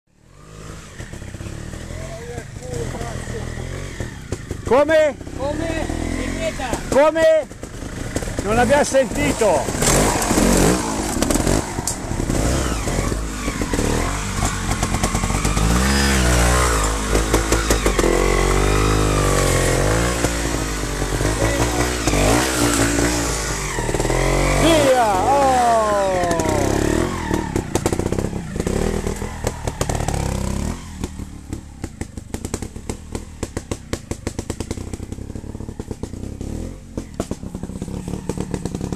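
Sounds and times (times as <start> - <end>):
motorcycle engines revving: 0.1 - 38.9.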